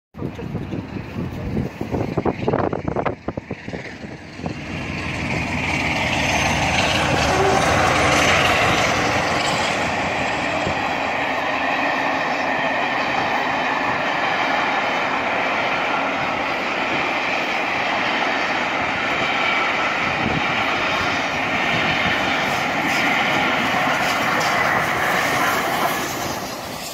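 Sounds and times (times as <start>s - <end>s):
train wheels rolling on rails: 0.2s - 26.9s.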